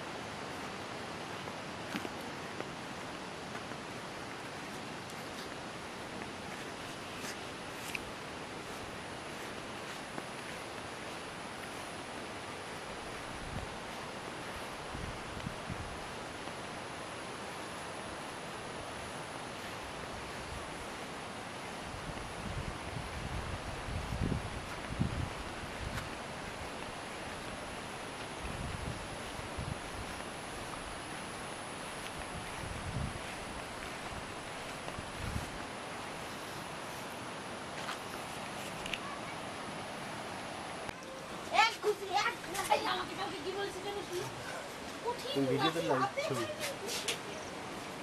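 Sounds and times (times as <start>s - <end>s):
wind noise: 12.7s - 16.7s, 21.7s - 36.8s
wind buffeting microphone: 21.9s - 35.8s.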